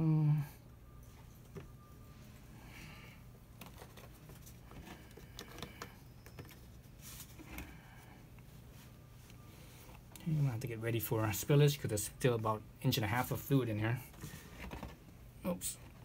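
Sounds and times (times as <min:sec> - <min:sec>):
faint low hum: 0:00.0 - 0:16.0
clicks and rustles of plastic hose: 0:14.1 - 0:15.1.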